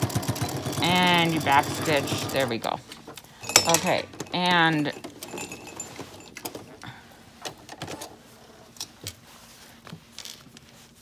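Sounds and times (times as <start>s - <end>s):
cloth rustling: 2.7s - 11.0s.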